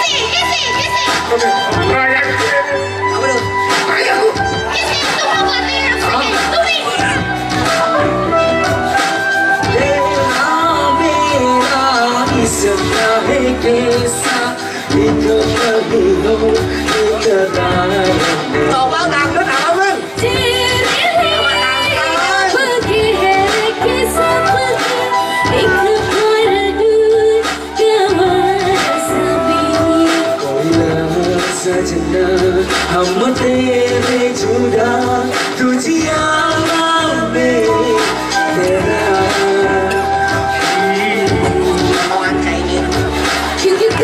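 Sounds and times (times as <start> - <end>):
band backing with bass: 0.0 - 44.0
instrumental accompaniment with beat: 0.0 - 44.0
person singing: 7.6 - 44.0.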